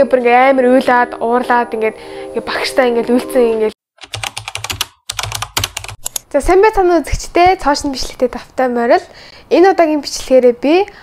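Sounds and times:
woman speaking: 0.0s - 3.8s, 6.3s - 11.0s
computer keyboard typing: 4.0s - 6.3s.

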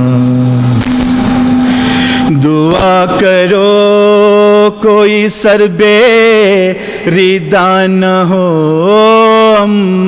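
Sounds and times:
man chanting: 0.0s - 1.0s, 2.1s - 10.0s
steady low note: 0.0s - 4.6s
noisy hiss: 0.0s - 10.0s.

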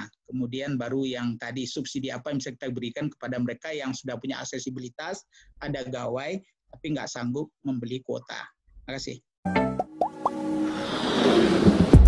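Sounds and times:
rising hiss: 10.4s - 12.0s.

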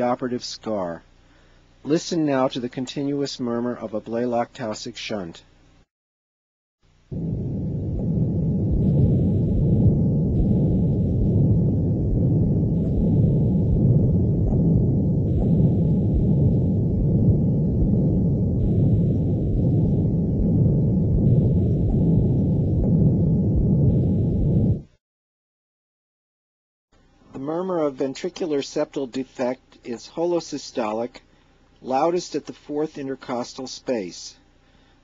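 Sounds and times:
heart murmur rushing sound: 7.1s - 25.0s.

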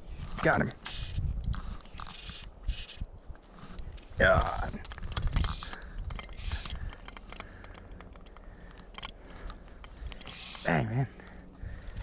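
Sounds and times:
hissing scrapes of line: 0.0s - 7.2s, 10.0s - 10.9s
fishing reel and line clicking: 0.2s - 3.1s, 4.4s - 10.7s.

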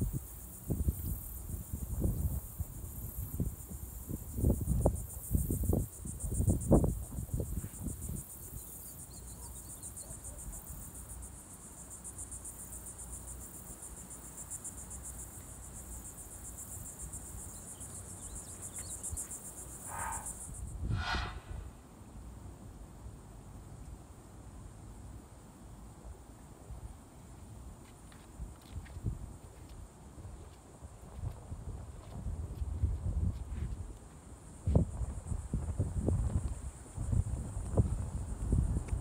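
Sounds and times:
insects trilling: 0.0s - 21.4s.

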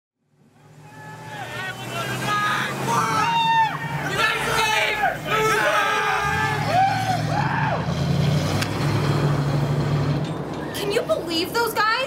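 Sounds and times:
off-road vehicle engine running: 0.2s - 12.0s.

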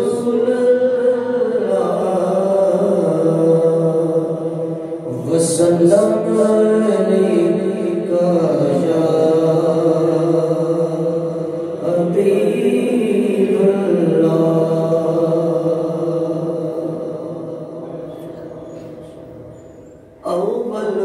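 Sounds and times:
man chanting into a microphone: 0.0s - 19.4s, 20.2s - 21.0s.

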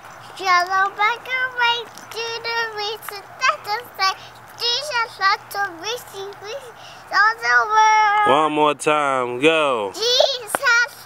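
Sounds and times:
girl singing: 0.3s - 8.4s, 10.0s - 11.0s.

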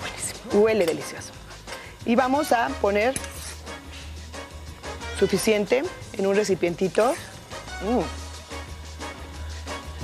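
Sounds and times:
spoon clinking on skillet: 0.6s - 2.0s.

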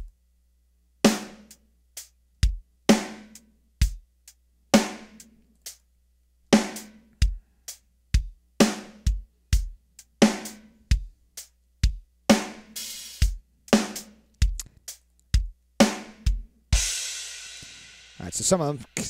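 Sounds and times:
drum kit beat: 1.0s - 5.9s, 6.5s - 19.0s.

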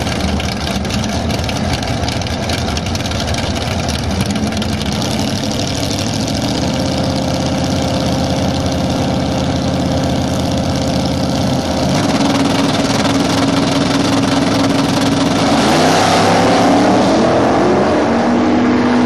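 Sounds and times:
car engine idling: 0.0s - 16.5s.

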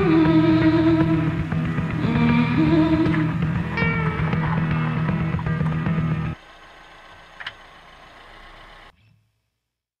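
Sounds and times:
background music: 0.0s - 6.4s.

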